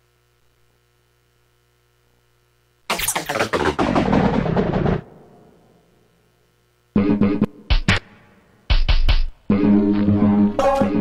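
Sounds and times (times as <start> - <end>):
noisy booming sound effect: 2.9 - 5.6.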